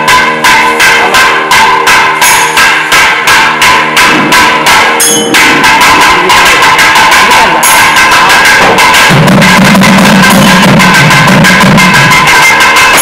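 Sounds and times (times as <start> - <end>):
small hand cymbals ringing: 0.0 - 12.9
barrel drum rhythm: 0.0 - 13.0.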